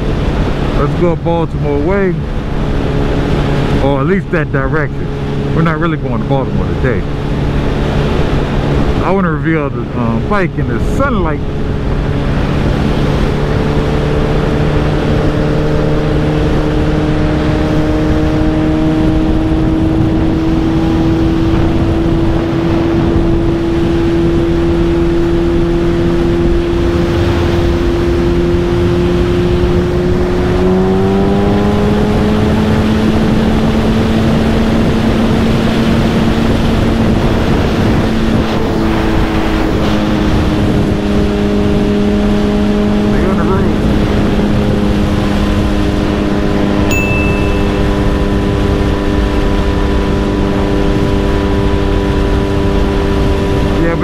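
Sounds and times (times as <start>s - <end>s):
motorcycle engine at speed: 0.0s - 54.0s
wind and road noise: 0.0s - 54.0s.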